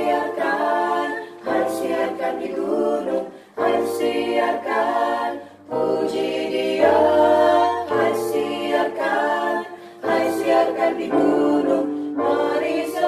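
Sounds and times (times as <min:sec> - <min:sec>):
choir singing a carol: 0:00.0 - 0:13.0.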